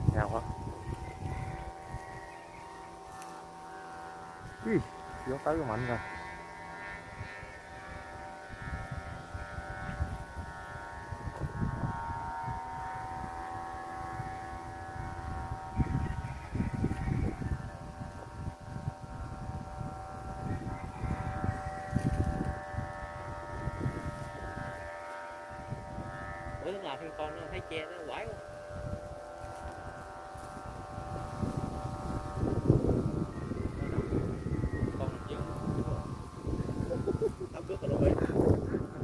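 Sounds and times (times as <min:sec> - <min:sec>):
wind buffeting microphone: 0:00.0 - 0:39.0
whistling drone of kite flutes: 0:13.8 - 0:24.6, 0:31.5 - 0:37.3.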